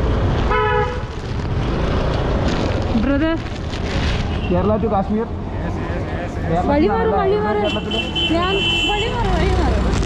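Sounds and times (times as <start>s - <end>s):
vehicle horn toot: 7.6s - 9.2s.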